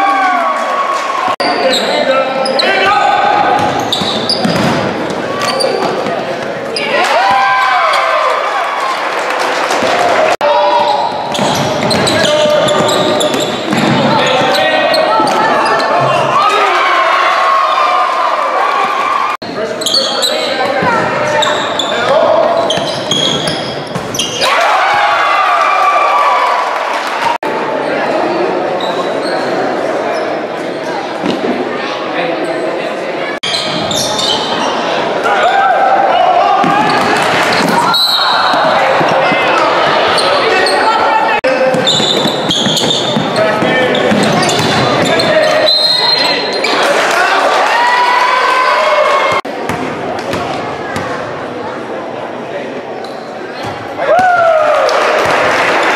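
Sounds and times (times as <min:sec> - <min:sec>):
echoing voices and shouts: 0:00.0 - 0:55.9.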